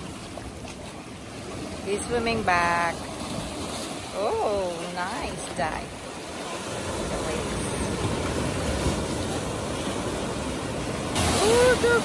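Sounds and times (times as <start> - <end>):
small waves washing in: 0.0 - 12.0.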